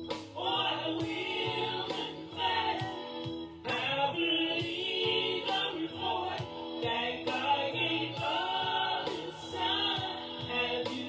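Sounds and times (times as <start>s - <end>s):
bass line: 0.0s - 11.0s
choir singing sustained chords: 0.0s - 11.0s
steady drum beat: 0.0s - 11.0s.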